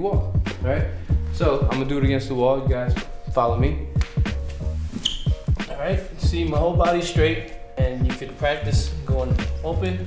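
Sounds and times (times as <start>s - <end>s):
hip-hop beat: 0.0s - 10.0s.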